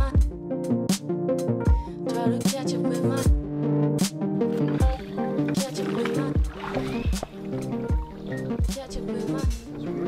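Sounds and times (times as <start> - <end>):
kick-drum beat: 6.4 - 7.3.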